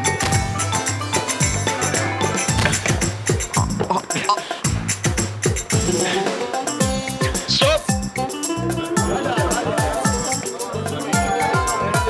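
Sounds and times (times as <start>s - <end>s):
sharp percussion: 0.0s - 12.0s
upbeat music with deep drums: 0.0s - 12.0s.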